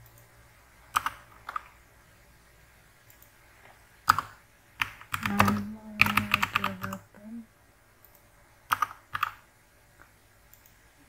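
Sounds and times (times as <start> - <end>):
typing on computer keyboard: 0.9 - 1.7, 4.0 - 7.0, 8.0 - 9.4
person speaking: 5.1 - 7.5.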